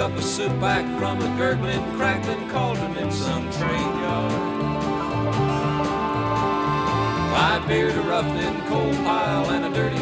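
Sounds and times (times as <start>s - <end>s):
man singing: 0.0s - 4.6s, 7.3s - 10.0s
acoustic guitar and banjo: 0.0s - 10.0s.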